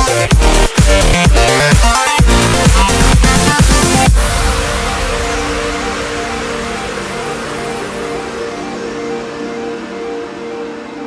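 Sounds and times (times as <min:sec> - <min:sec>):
sustained synth chords: 0:00.0 - 0:11.0.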